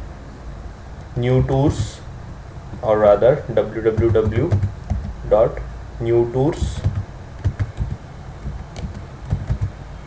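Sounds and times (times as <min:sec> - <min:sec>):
computer keyboard typing: 0:03.9 - 0:05.2, 0:06.8 - 0:09.8.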